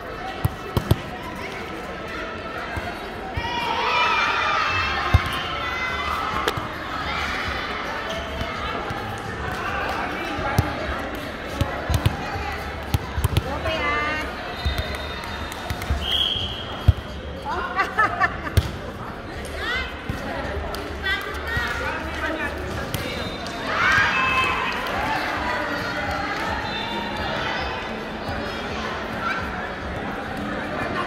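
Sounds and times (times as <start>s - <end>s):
volleyball hits: 0.4s - 1.2s, 4.9s - 5.6s.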